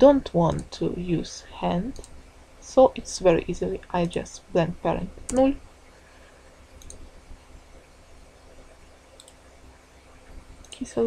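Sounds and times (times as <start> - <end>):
low room hum: 0.0 - 11.0
computer mouse clicks: 6.8 - 7.1, 9.2 - 9.4.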